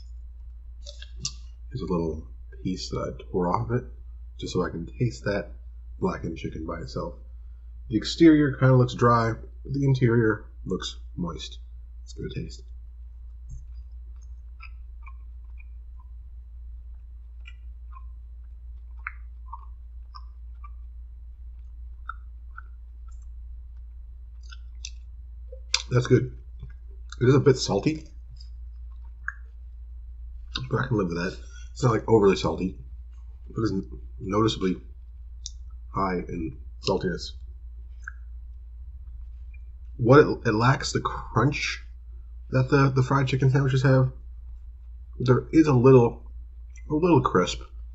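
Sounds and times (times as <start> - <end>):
steady low hum: 0.0 - 47.9
faint mouth clicks: 0.8 - 1.5, 22.0 - 23.3, 24.4 - 26.0, 28.4 - 29.5
mouth clicks: 0.8 - 2.7, 16.9 - 20.9, 21.6 - 29.5, 30.5 - 32.7, 38.0 - 38.3.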